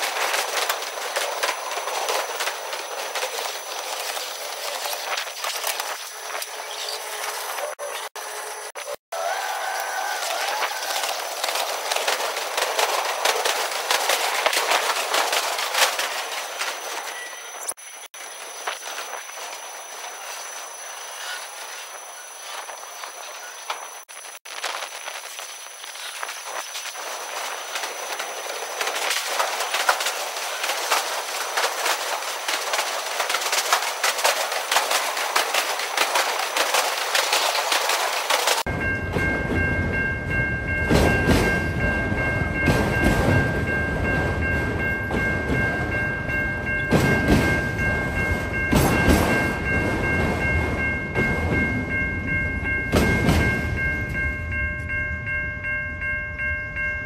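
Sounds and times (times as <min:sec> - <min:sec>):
freight cars clattering wheels: 0:00.0 - 0:56.2.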